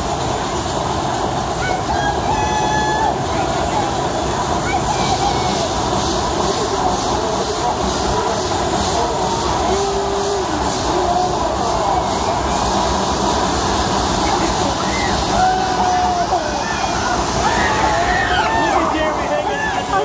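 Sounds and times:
loud outdoor roar: 0.0 - 20.0.

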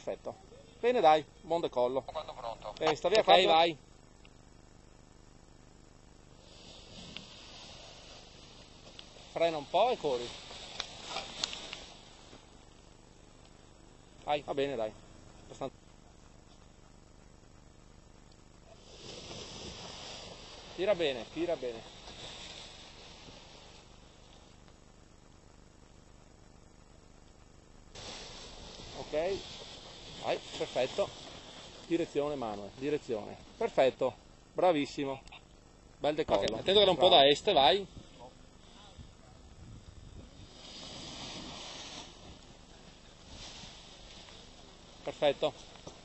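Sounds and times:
faint wind hiss: 0.0 - 46.0
loud hiss: 6.2 - 15.7, 18.6 - 25.2, 27.8 - 35.2, 35.9 - 46.0.

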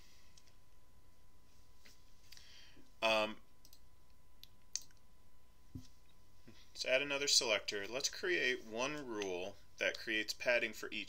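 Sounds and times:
computer mouse clicks: 3.6 - 3.8, 4.4 - 5.0.

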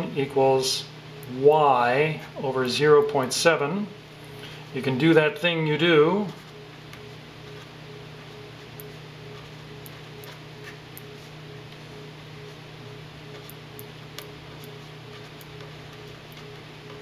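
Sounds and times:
steady low hum: 0.0 - 17.0
marker scratching on paper: 14.5 - 16.6.

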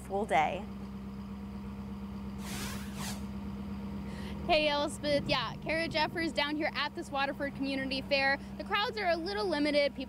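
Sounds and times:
steady low hum: 0.0 - 10.0
high whooshing hiss: 2.4 - 3.3.

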